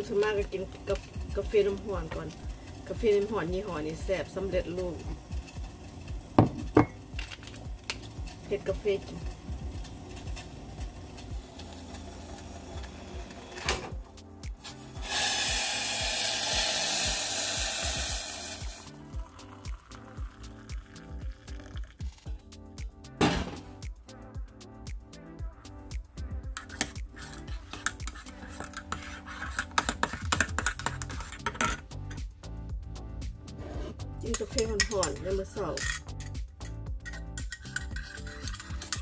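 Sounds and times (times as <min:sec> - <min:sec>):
teaspoon clinking in ceramic mug: 0:34.3 - 0:39.0.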